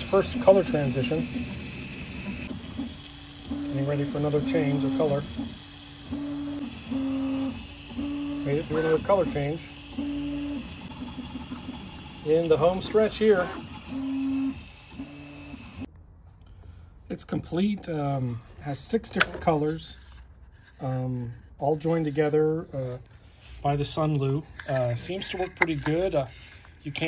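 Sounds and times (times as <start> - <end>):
printer fans hissing: 0.0 - 15.9
stepper motors whining: 0.0 - 15.9.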